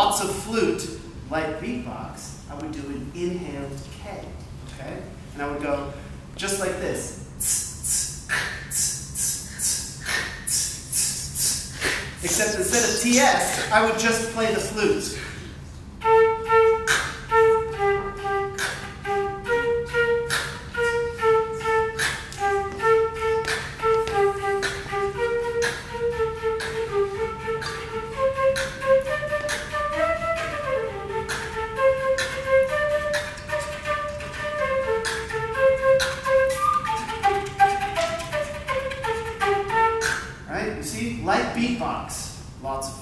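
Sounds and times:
beatbox flute melody: 0:06.5 - 0:41.0.

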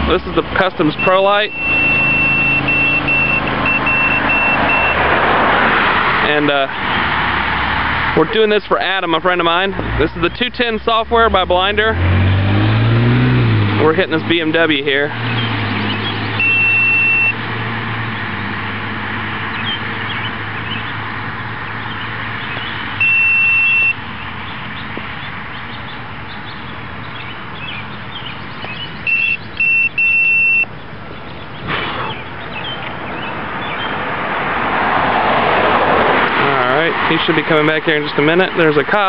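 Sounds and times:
outdoor road noise: 0:00.0 - 0:39.0
speed gun beeping: 0:01.0 - 0:05.0, 0:16.4 - 0:17.4, 0:23.0 - 0:24.0, 0:29.1 - 0:30.7.

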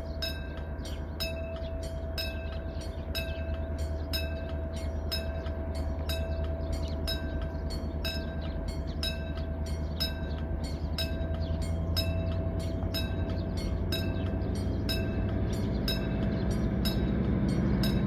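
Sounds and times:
locomotive engine rumble: 0:00.0 - 0:18.0.

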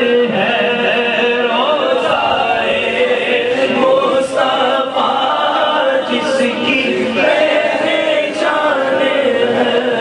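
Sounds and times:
group chanting: 0:00.0 - 0:10.0.

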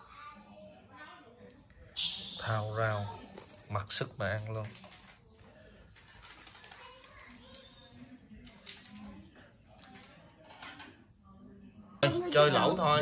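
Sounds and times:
faint background voices: 0:00.0 - 0:13.0.

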